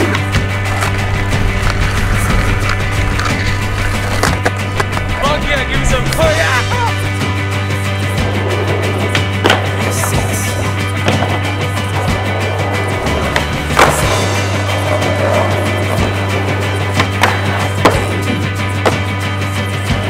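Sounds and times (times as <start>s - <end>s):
skateboard impacts: 0.0s - 6.4s, 8.4s - 19.2s
music with sustained bass: 0.0s - 20.0s
skateboard wheels rolling on pavement: 0.0s - 20.0s.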